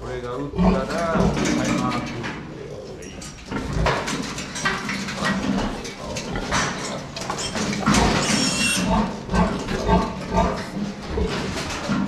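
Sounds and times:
piglet squealing: 8.2 - 8.9.

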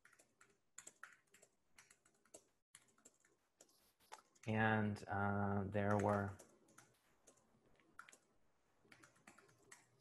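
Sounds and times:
faint computer keyboard typing: 0.0 - 4.8, 5.8 - 10.0.

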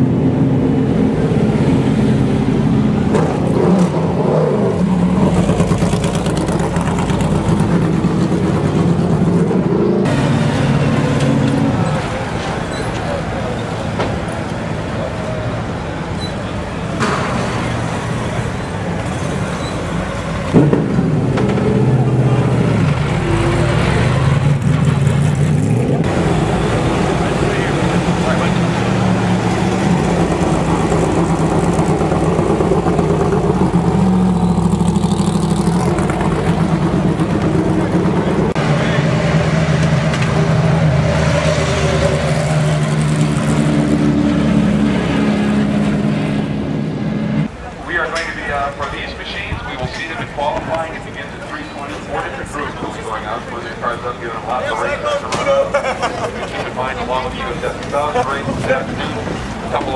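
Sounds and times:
race car engines running slowly: 0.0 - 59.9.

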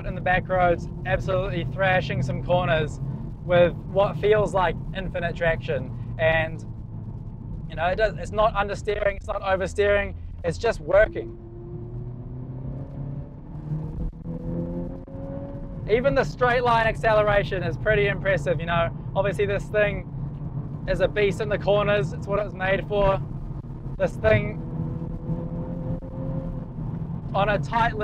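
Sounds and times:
car engine from inside cabin: 0.0 - 28.0
road rumble: 0.0 - 28.0.

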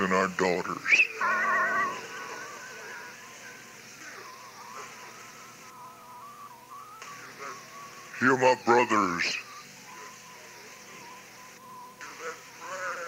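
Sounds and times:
faint steady held tone: 0.0 - 13.0
high wavering voice: 0.9 - 13.0.

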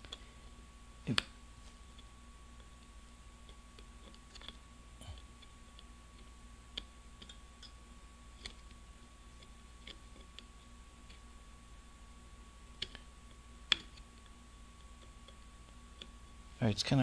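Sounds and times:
steady faint hum: 0.0 - 17.0.

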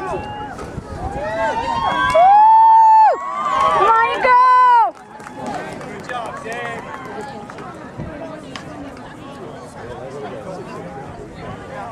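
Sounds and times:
crowd chatter: 0.0 - 11.9.

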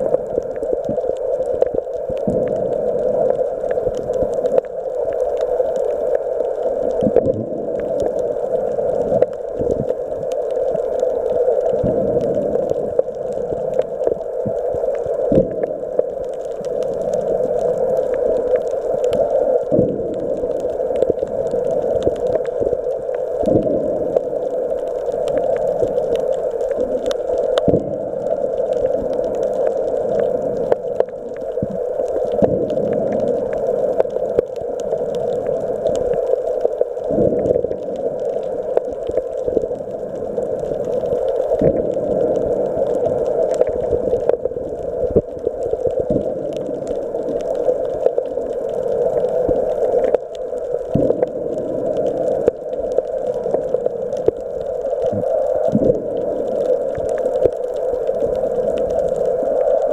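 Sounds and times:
muffled underwater rushing: 0.0 - 59.9.

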